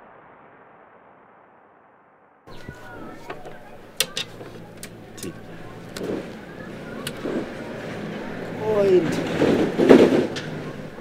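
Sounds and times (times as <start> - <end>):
man speaking: 2.6 - 6.0, 8.4 - 9.4.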